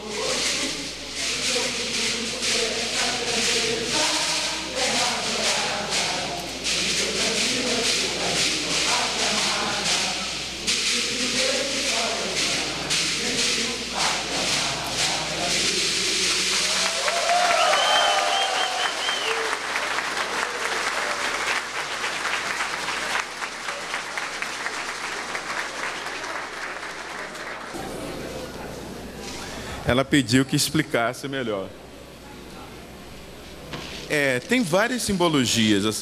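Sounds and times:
audience applauding: 0:16.2 - 0:27.8.

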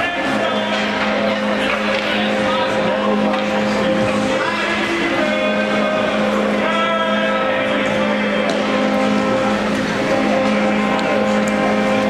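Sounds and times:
crowd noise: 0:00.0 - 0:12.0
horn long steady tone: 0:00.0 - 0:12.0.

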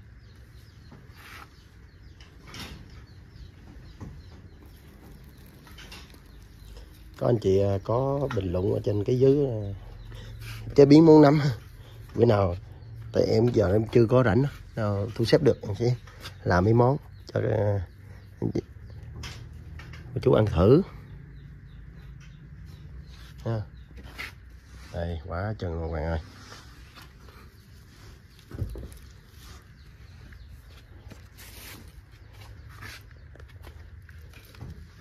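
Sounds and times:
dry straw rustling and crackling: 0:04.5 - 0:09.6, 0:26.4 - 0:35.0.

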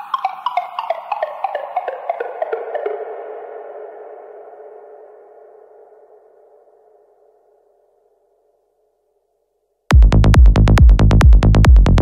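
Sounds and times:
heavy kick-drum beat: 0:09.9 - 0:12.0.

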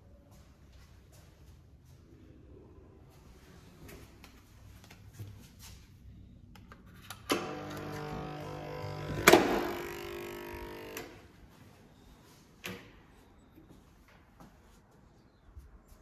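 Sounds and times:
key-card lock buzzing: 0:07.3 - 0:11.2.

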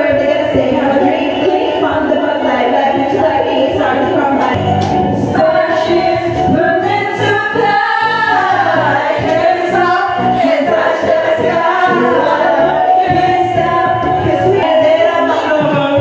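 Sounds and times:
karaoke backing track: 0:00.0 - 0:16.0
voices singing along: 0:00.0 - 0:16.0.

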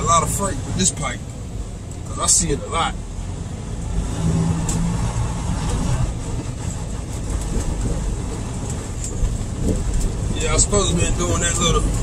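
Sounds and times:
diesel truck engine rumble: 0:00.0 - 0:12.0.

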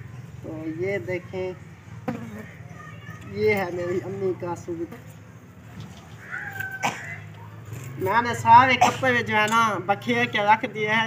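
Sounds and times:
high-pitched cat-like cry: 0:06.2 - 0:07.3.

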